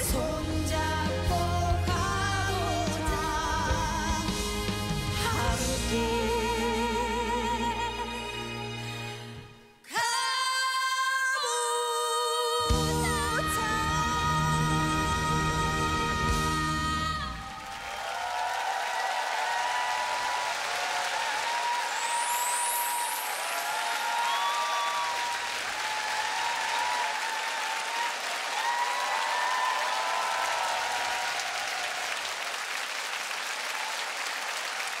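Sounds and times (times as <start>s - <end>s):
audience applauding: 17.2s - 35.0s
audience shouting: 17.4s - 32.6s.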